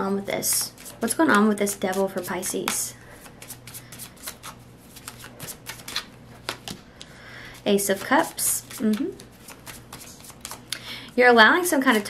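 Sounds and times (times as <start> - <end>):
cards being shuffled: 0.4 - 10.7.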